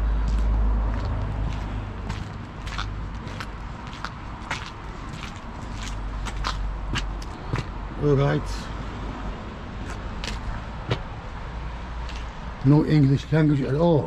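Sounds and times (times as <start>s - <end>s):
footsteps on wet paving: 0.1s - 7.8s, 9.8s - 11.2s, 12.0s - 13.2s.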